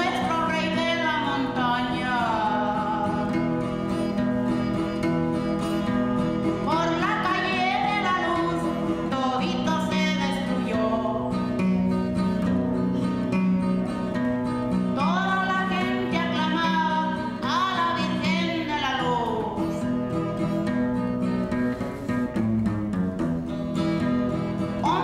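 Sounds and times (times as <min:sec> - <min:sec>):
woman singing: 0:00.0 - 0:04.3, 0:06.5 - 0:11.7, 0:14.9 - 0:20.0, 0:24.7 - 0:25.0
strummed acoustic guitar: 0:00.0 - 0:25.0.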